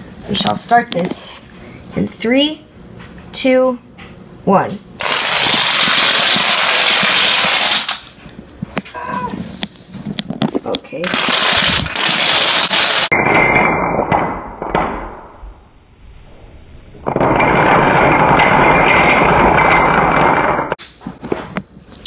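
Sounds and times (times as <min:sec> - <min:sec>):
dominoes clattering on wooden floor: 0:05.0 - 0:08.0, 0:11.0 - 0:13.1.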